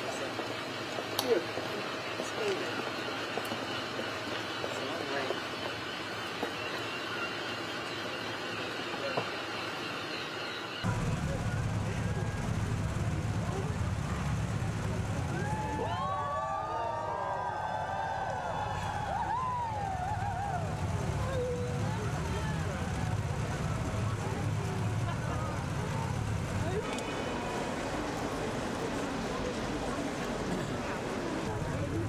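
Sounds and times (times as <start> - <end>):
car idling rumble: 10.8 - 16.0, 18.4 - 32.0.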